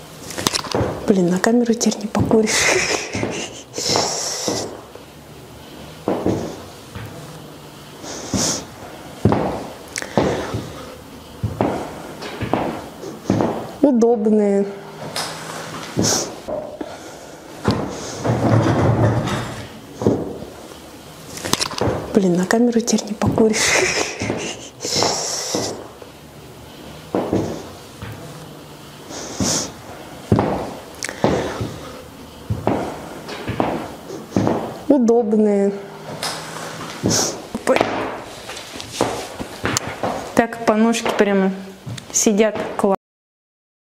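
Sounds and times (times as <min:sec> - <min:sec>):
high heels clicking on floor: 0:02.2 - 0:04.8, 0:11.4 - 0:13.8, 0:32.5 - 0:34.8, 0:36.1 - 0:41.3
heeled boots clicking on hard floor: 0:03.1 - 0:04.9, 0:06.0 - 0:07.2, 0:09.2 - 0:10.8, 0:11.4 - 0:13.8, 0:17.6 - 0:20.6, 0:21.4 - 0:22.2, 0:24.2 - 0:25.9, 0:30.3 - 0:34.8, 0:36.1 - 0:42.9.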